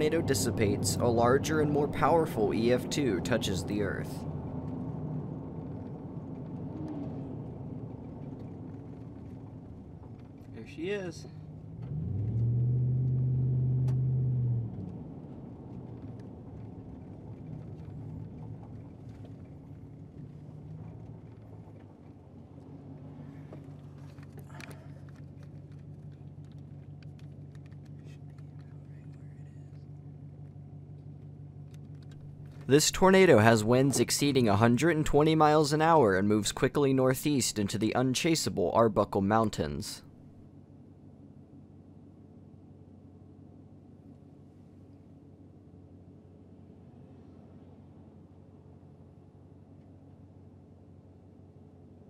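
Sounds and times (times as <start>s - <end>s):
loud low drone: 0.0s - 5.7s
vehicle engine humming: 0.0s - 52.0s.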